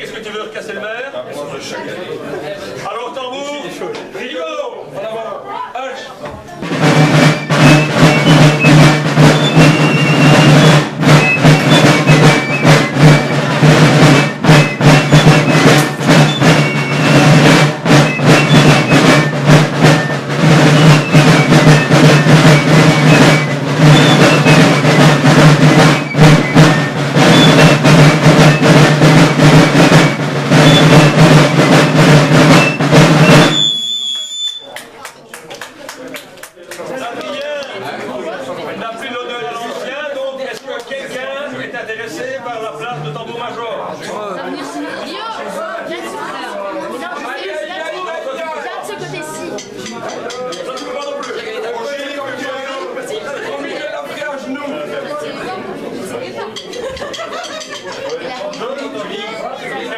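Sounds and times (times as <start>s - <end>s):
marching side drums with rolls: 6.3s - 34.0s, 49.2s - 51.7s, 56.5s - 58.7s.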